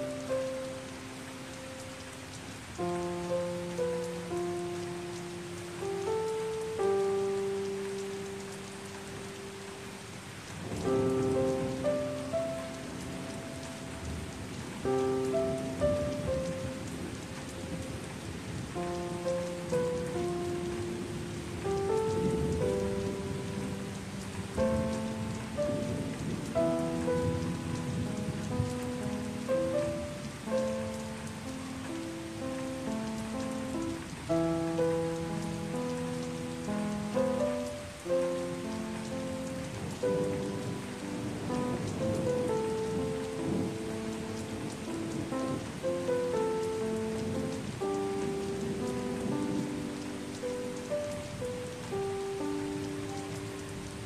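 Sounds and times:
gentle piano melody: 0.0 - 54.0
rain hiss: 0.0 - 54.0.

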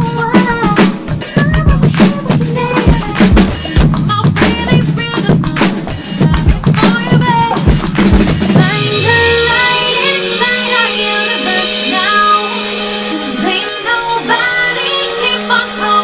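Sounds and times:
acoustic drum kit groove: 0.0 - 16.0
recorded song with held chords: 0.0 - 16.0.

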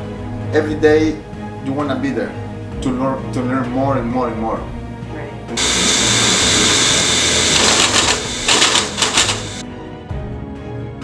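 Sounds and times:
machine tool cutting metal: 5.6 - 9.6.

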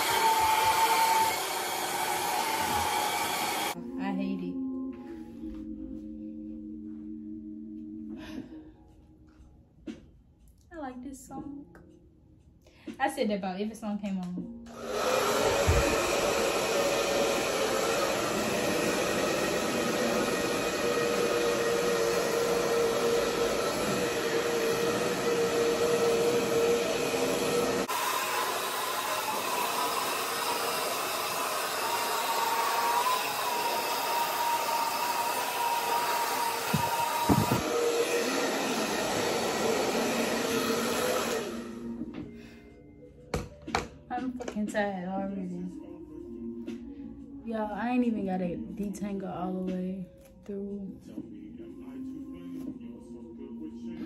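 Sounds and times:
hair dryer blowing: 0.0 - 3.8, 14.7 - 42.3.

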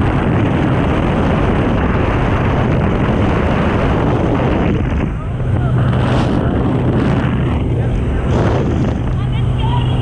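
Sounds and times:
wind buffeting microphone: 0.0 - 10.0
wind rushing: 0.0 - 10.0.

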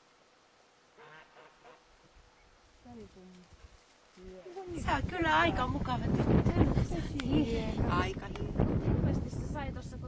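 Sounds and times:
ducks quacking faintly: 1.0 - 2.1.

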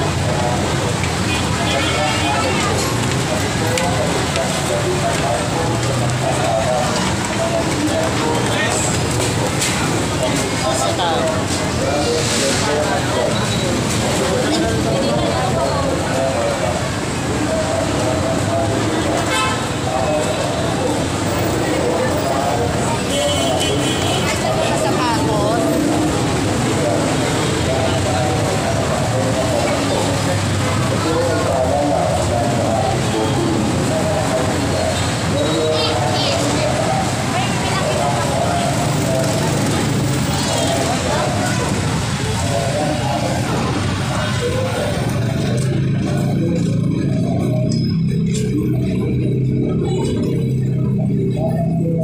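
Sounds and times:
crowd voices: 0.0 - 52.0
passers-by chatting: 0.0 - 52.0
traffic: 0.0 - 52.0.

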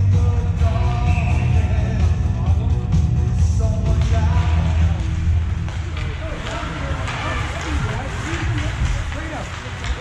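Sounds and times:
rock music over pa system: 0.0 - 6.4
ice rink noise: 0.1 - 10.0
spectators' voices: 0.6 - 10.0.

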